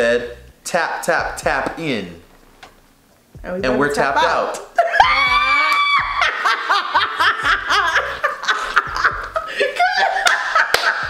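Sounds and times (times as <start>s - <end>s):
people laughing hard: 4.8s - 11.0s
sharp hand claps: 10.2s - 11.0s.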